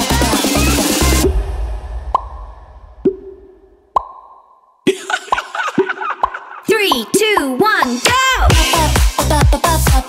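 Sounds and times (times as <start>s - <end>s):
low bass tail: 0.2s - 4.1s
cartoon pop sound effects: 3.9s - 4.5s.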